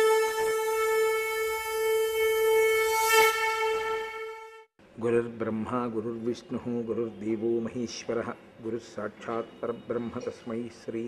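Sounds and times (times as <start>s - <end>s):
conch shell blown: 0.0s - 4.7s.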